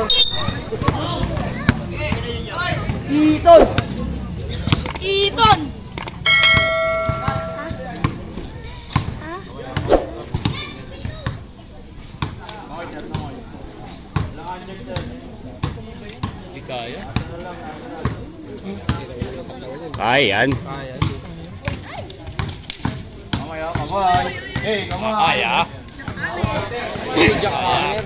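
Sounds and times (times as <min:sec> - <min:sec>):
steady held tone: 0:06.0 - 0:08.0.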